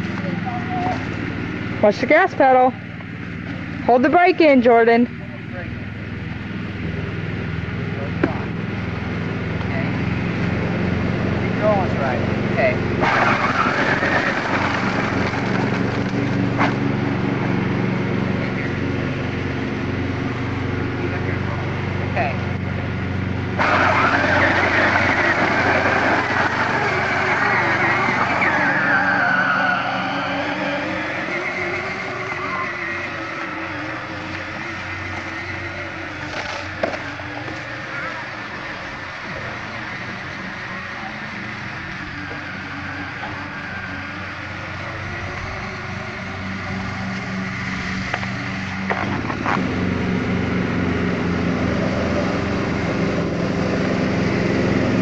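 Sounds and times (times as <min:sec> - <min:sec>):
small atv engine: 0:00.0 - 0:55.0.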